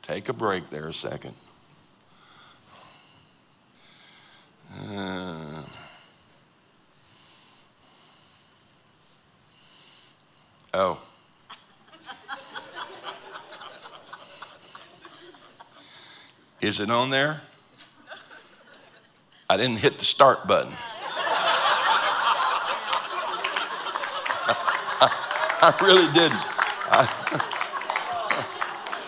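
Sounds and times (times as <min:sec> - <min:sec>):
man breathing softly: 0:02.0 - 0:04.6, 0:05.7 - 0:11.5.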